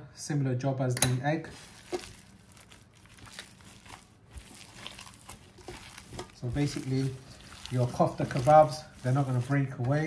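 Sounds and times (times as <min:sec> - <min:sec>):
hand kneading raw mince: 0:01.4 - 0:10.0.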